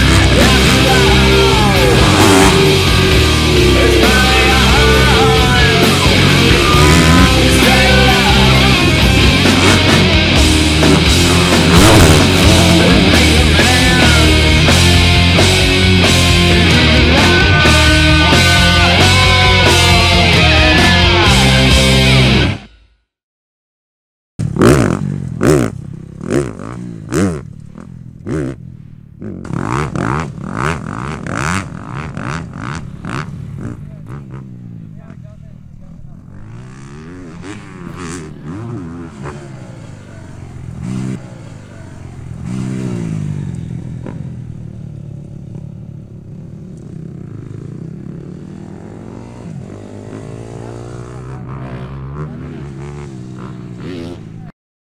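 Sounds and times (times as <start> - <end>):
motocross bike engine revving: 0.0 - 22.6, 24.4 - 54.5.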